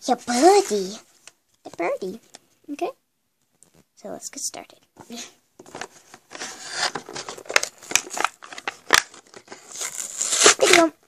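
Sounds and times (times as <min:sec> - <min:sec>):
plastic packaging being torn open: 0:06.3 - 0:10.9.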